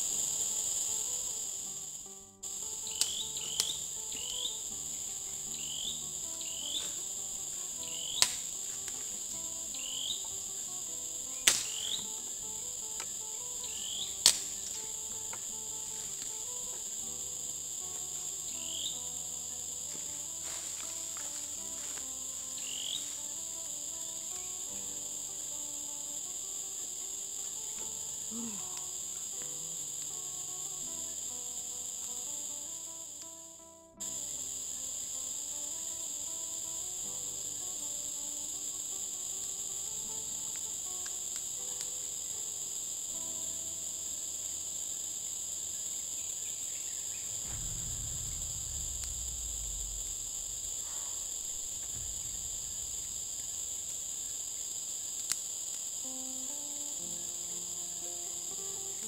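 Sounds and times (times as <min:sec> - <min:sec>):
high-pitched insect chorus: 0:00.0 - 0:59.0
sharp knock: 0:11.5 - 0:12.0, 0:47.2 - 0:54.2.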